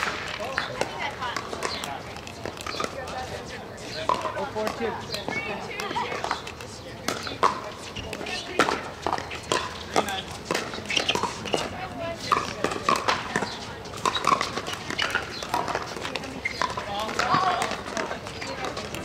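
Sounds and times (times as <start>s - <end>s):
voices of players and spectators: 0.0s - 19.0s.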